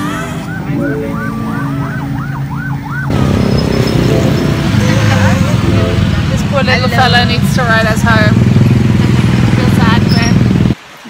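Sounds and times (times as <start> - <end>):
electronic music with swooping synth: 0.0 - 7.3
motorbike and car engines: 0.0 - 10.9
road noise: 0.0 - 11.0
voices: 0.0 - 11.0.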